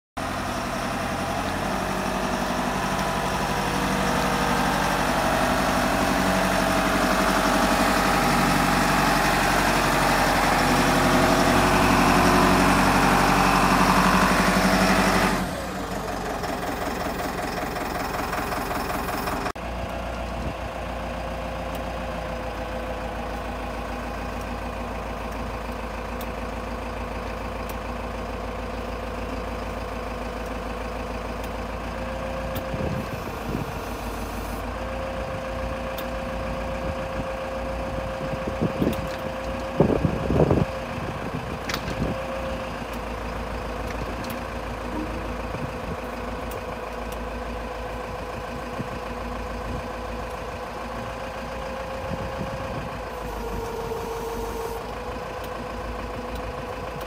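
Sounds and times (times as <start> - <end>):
machine engine running: 42.7 - 51.1.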